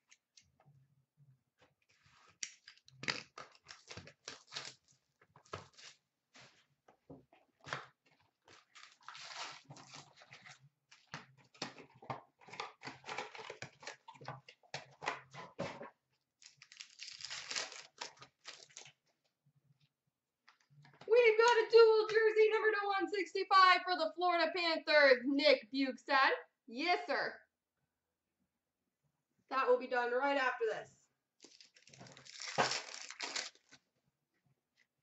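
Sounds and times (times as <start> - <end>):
cardboard and wrappers tearing: 2.1 - 6.6, 8.4 - 11.8, 12.4 - 14.2, 16.4 - 19.0, 31.4 - 33.8.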